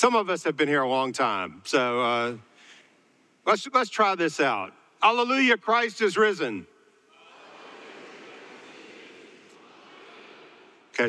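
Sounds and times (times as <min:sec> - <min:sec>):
congregation speaking together: 0:00.0 - 0:02.7, 0:03.5 - 0:11.0.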